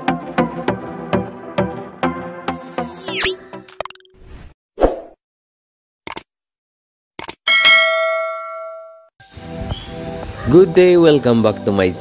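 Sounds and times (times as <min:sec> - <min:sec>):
service bell ding: 0:07.5 - 0:09.1.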